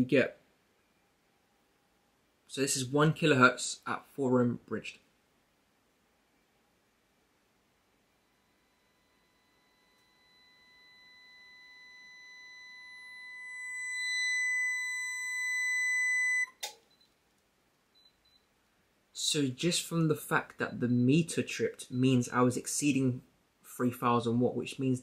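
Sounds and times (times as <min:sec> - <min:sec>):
sine-wave test tone: 0:07.9 - 0:17.2.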